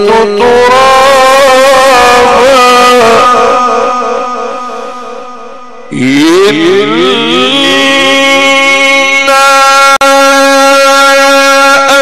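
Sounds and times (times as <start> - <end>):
man chanting a long note: 0.0 - 12.0.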